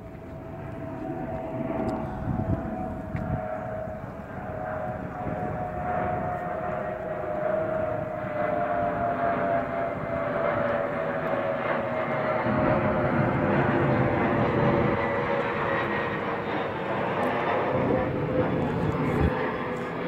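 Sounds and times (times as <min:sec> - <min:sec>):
jet airliner flying overhead: 0:00.0 - 0:20.0.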